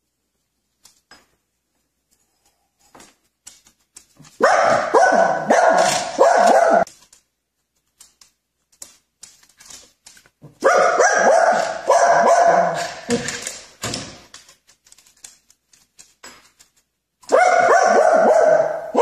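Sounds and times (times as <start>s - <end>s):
small dog barking: 4.4s - 6.9s, 10.6s - 13.1s, 17.3s - 19.0s.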